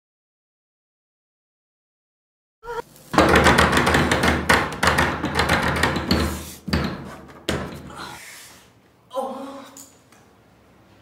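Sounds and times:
door banging: 3.2 - 7.9.

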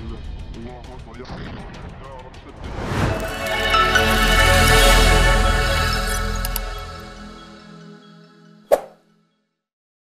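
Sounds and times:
closing music: 2.6 - 8.5.

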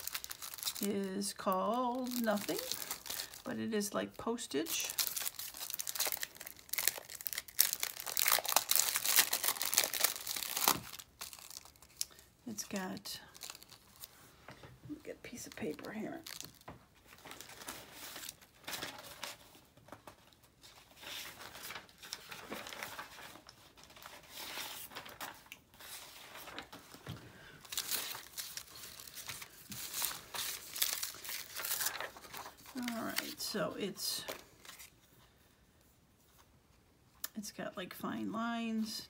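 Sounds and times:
plastic packaging crinkling: 0.0 - 3.5, 4.6 - 14.2, 15.2 - 33.5
paper rustling: 15.3 - 33.4, 34.3 - 35.2.

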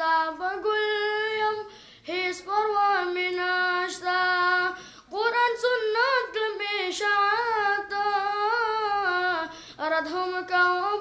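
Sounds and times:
boy singing unaccompanied: 0.0 - 11.0.

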